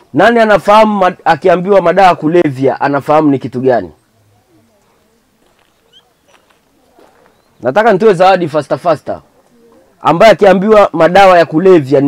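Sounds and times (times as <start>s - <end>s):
distant voices: 4.0s - 10.2s.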